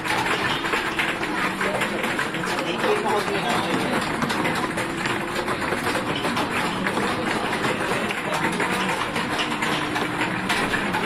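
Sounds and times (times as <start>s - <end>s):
arcade machines din: 0.0s - 11.0s
small clicks and rattles: 0.0s - 11.0s.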